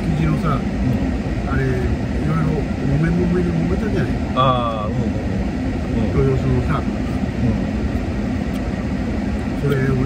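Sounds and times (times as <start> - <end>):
car engine rumble in cabin: 0.0 - 10.0
low conversational voices: 0.0 - 10.0.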